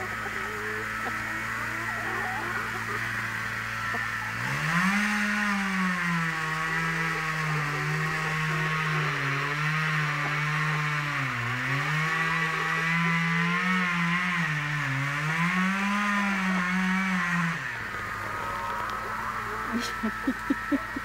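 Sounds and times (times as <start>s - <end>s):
engine revving: 0.0s - 21.0s.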